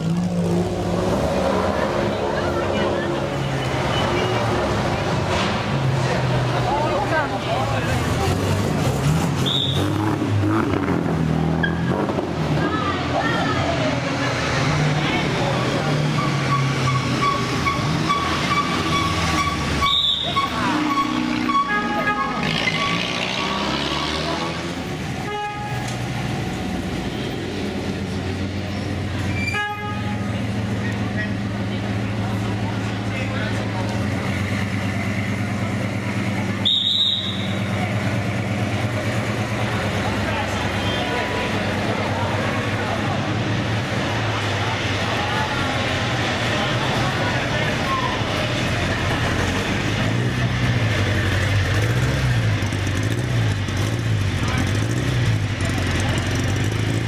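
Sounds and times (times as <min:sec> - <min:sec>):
crowd talking: 0:00.0 - 0:57.0
car engines at low speed: 0:30.0 - 0:57.0.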